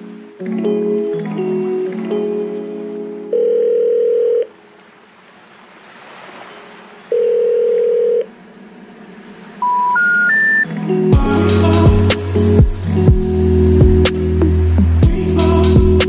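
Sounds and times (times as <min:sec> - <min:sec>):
song chords: 0:00.0 - 0:03.4, 0:09.6 - 0:16.0
telephone ringback tone: 0:03.3 - 0:04.6, 0:07.1 - 0:08.3, 0:09.6 - 0:10.7
rising stepped beeps: 0:09.6 - 0:10.7.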